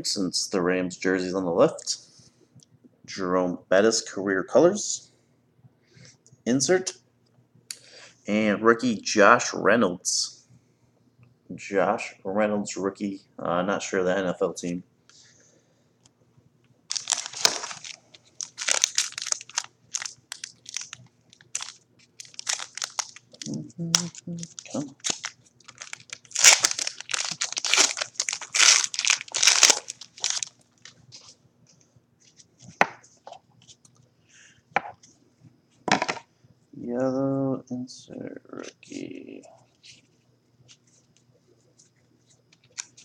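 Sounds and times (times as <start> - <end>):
wrapper crinkling and tearing: 16.9 - 31.4, 42.5 - 43.0.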